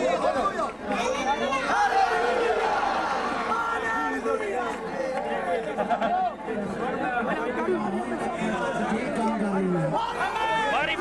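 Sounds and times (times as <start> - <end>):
crowd chatter: 0.0 - 11.0
voices talking over one another: 0.0 - 11.0.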